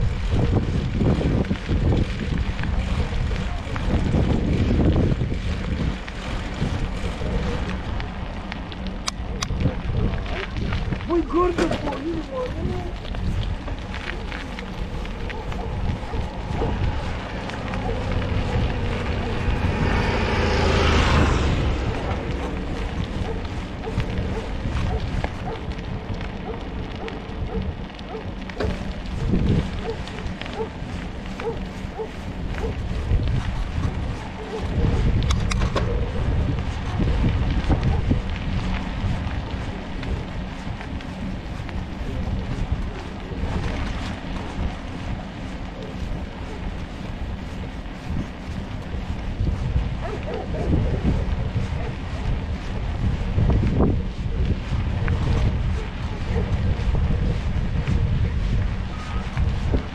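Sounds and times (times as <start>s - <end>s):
bicycle tyre and road noise: 0.0s - 59.9s
wind rushing over microphone: 0.0s - 59.9s.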